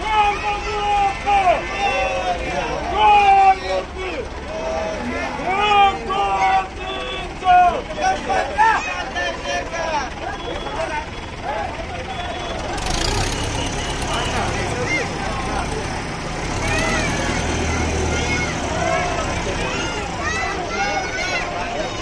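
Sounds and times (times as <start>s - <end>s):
crowd calling out: 0.0s - 22.0s
heavy vehicle engine drone: 0.0s - 22.0s.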